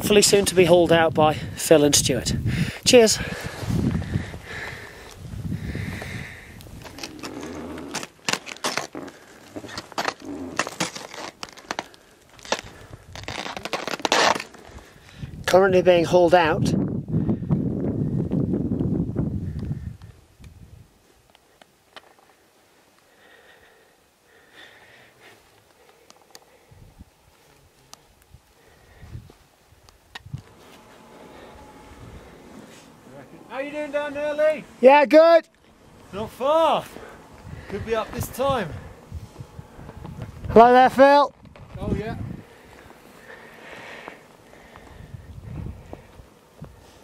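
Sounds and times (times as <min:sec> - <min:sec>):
clothing and gear crackling: 0:03.0 - 0:15.2.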